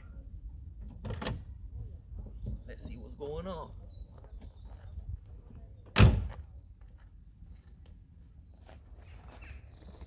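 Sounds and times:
car door slamming shut: 6.0 - 6.3.

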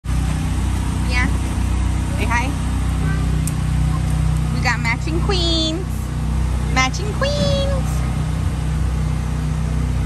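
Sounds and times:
voices: 0.3 - 8.4.

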